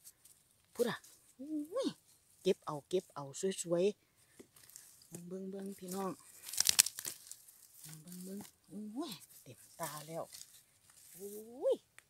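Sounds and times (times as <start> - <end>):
person exclaiming: 0.8 - 2.0, 7.9 - 9.2, 11.2 - 11.8.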